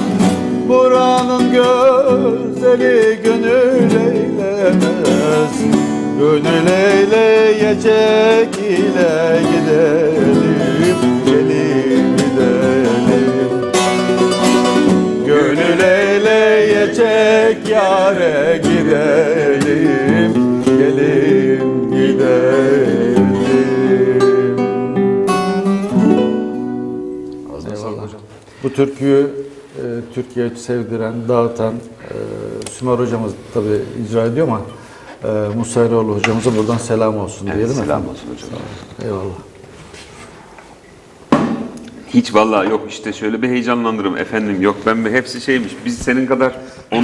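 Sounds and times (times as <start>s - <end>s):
man singing folk song: 0.0s - 25.2s
plucked strings: 1.2s - 21.6s.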